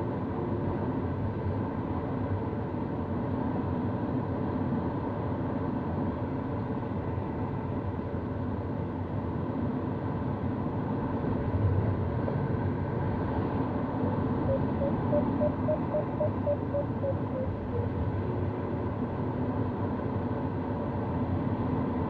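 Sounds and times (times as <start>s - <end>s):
rising beeps: 14.5s - 17.8s.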